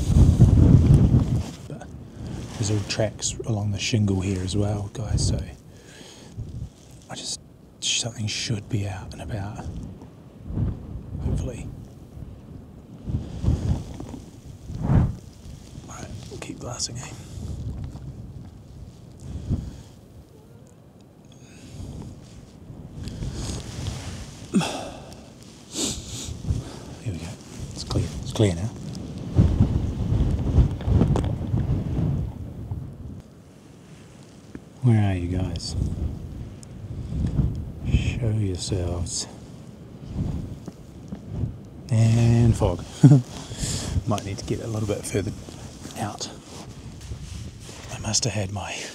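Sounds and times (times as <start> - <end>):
wind buffeting microphone: 0.0 - 48.9.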